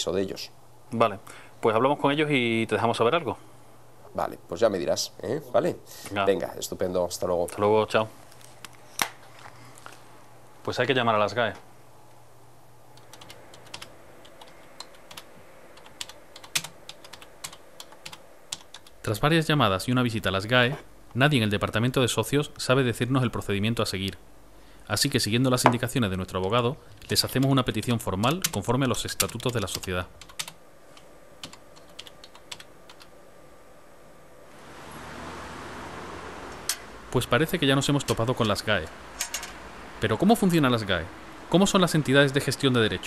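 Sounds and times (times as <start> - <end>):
typing on computer keyboard: 13.0 - 19.0, 28.2 - 30.6, 31.4 - 33.1.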